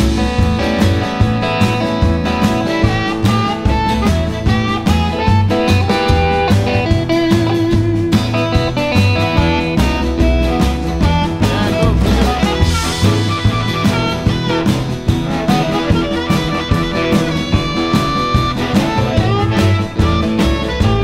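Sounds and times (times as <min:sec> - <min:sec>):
bass: 0:00.0 - 0:21.0
drum kit: 0:00.0 - 0:21.0
guitar: 0:00.0 - 0:21.0.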